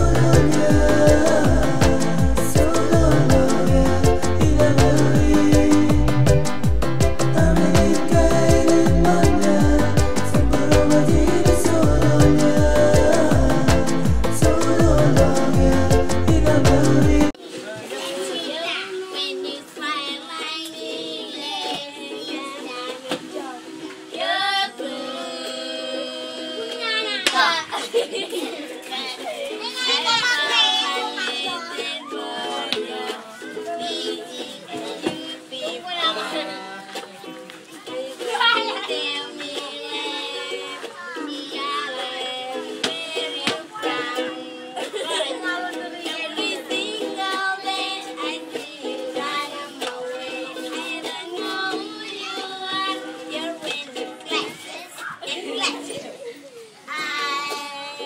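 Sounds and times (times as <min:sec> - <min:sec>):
children chattering: 0:17.3 - 0:58.0.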